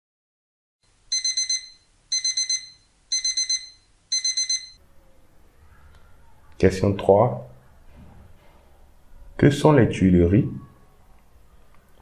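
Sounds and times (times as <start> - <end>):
rapid high-pitched alarm beeps: 1.1 - 4.8.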